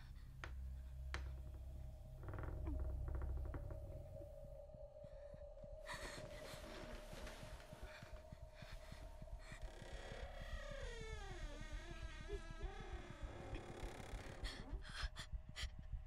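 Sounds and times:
low rumbling drone: 0.0 - 16.0.

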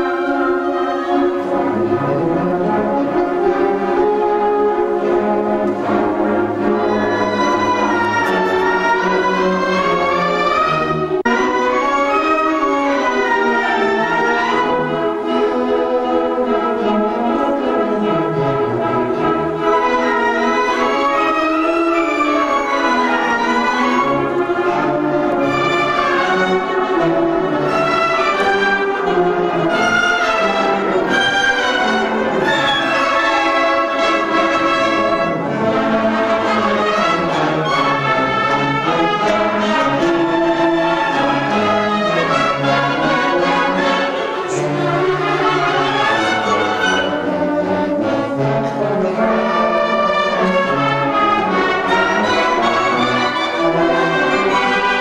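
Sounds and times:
concert band playing: 0.0 - 15.1
trumpets: 0.0 - 55.0.

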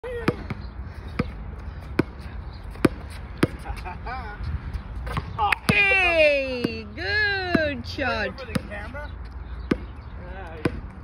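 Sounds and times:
basketball bouncing on hard court: 0.3 - 1.4, 8.5 - 8.8, 9.6 - 9.9, 10.6 - 10.9.

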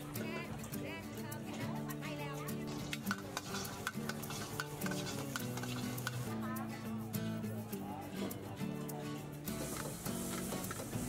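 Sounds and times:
background music: 0.0 - 11.0
food sizzling: 0.2 - 7.0, 9.4 - 11.0
metal ladle scraping a wok: 2.6 - 6.3.

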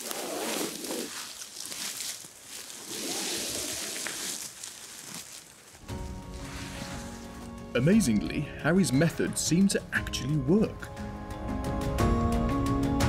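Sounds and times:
clothing scraping on leaf litter: 0.0 - 7.6
music: 5.8 - 13.0.

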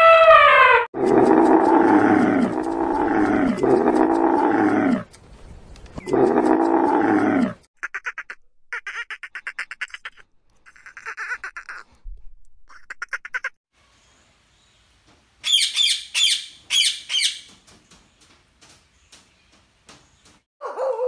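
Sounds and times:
camel groaning: 1.0 - 5.1, 6.0 - 7.6.

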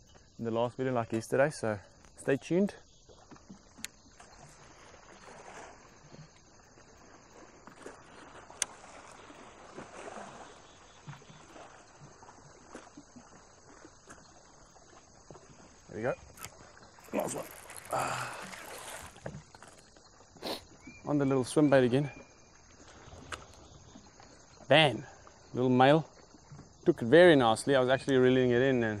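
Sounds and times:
faint water and air noise: 0.0 - 29.0.

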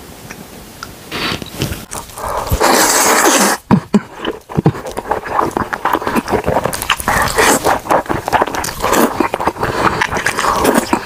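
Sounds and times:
wet slurping of noodles: 1.3 - 11.0.

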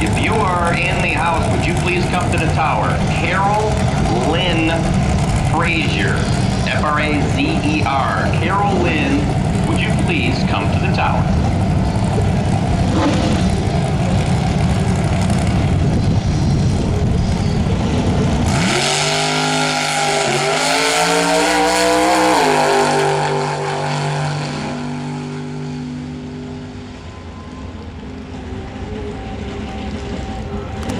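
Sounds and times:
drag car engine revving: 0.0 - 30.9.

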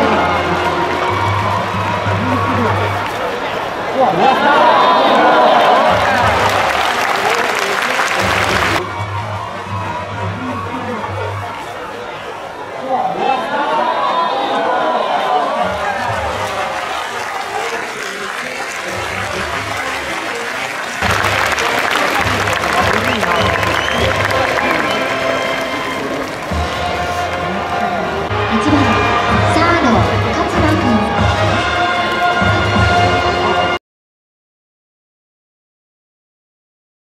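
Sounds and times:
music playing: 0.0 - 13.0, 15.4 - 33.8
crowd cheering: 0.0 - 33.8.

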